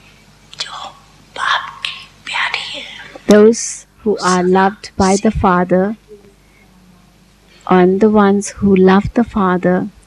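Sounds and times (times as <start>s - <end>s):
woman speaking softly: 0.6s - 10.0s.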